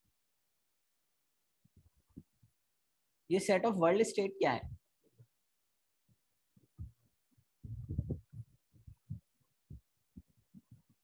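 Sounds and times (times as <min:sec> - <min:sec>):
faint low thumps: 0:07.6 - 0:11.0.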